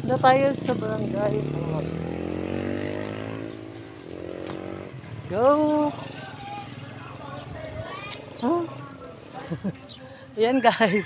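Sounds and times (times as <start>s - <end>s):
motorcycle engine rising in pitch: 0.2s - 8.9s.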